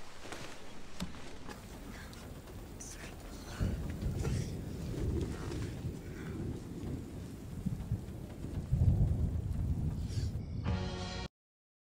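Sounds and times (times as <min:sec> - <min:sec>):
low rumble: 0:00.0 - 0:10.7
rain falling on a car: 0:01.1 - 0:10.0.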